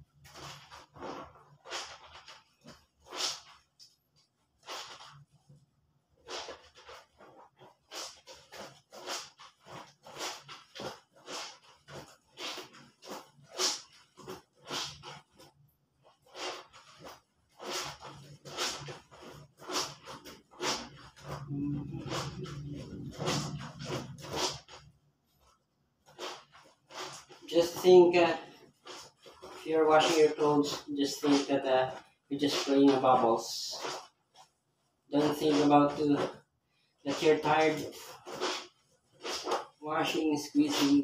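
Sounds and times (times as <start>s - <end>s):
clothes scrubbed in soapy water: 0.0s - 41.0s.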